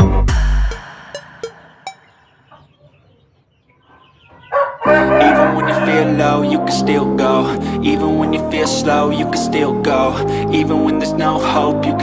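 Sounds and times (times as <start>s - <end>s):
music: 0.0s - 2.0s, 4.8s - 12.0s
loud bird call: 1.4s - 6.4s.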